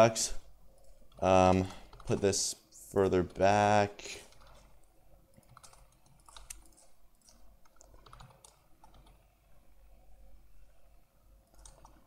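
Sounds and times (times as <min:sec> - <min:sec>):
faint low hum: 0:00.0 - 0:12.0
mouse and keyboard clicks: 0:05.4 - 0:09.2, 0:11.5 - 0:12.0.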